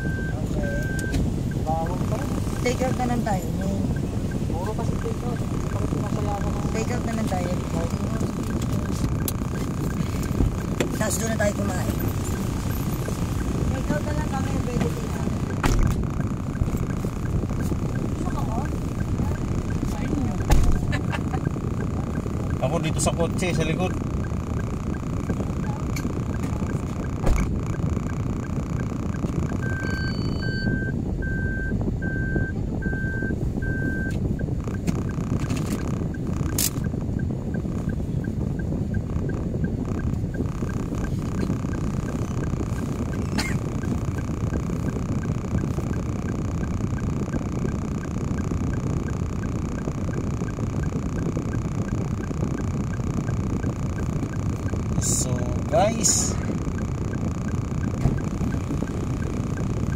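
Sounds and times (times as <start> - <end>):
short beeps: 0.0 - 15.6, 29.4 - 34.2
car engine idling: 0.0 - 59.9
faint regular ticking: 0.0 - 59.9
sharp clicks: 4.3 - 29.8, 34.0 - 59.9.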